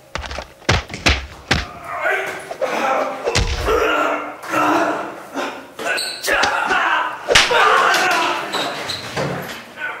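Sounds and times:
heavy thuds of fist fight: 0.2s - 1.8s, 3.3s - 3.9s
person straining or calling out: 1.6s - 5.2s.

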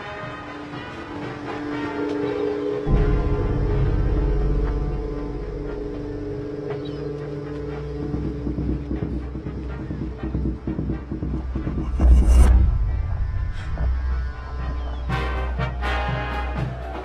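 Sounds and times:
tense film score: 0.0s - 17.0s.

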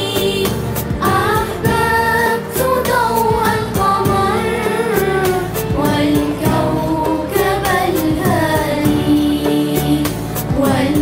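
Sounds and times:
children's choir singing: 0.0s - 11.0s.

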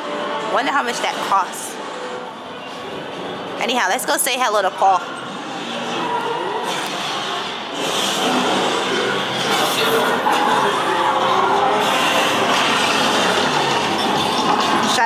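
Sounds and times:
action film soundtrack from tv: 0.0s - 15.0s.

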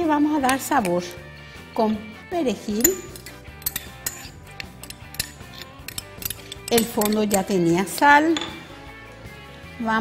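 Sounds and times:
soft background music: 0.0s - 10.0s
metal spoon clinking on bowl: 2.7s - 7.6s.

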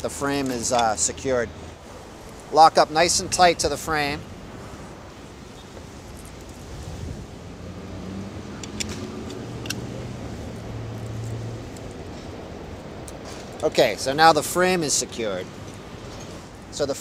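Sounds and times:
car engine humming: 0.0s - 14.8s
street noise: 0.0s - 17.0s
metallic clicks of bike lock: 8.6s - 9.9s.

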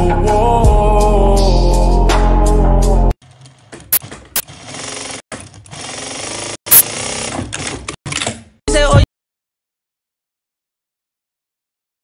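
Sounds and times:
sewing machine stitching: 3.2s - 8.4s.

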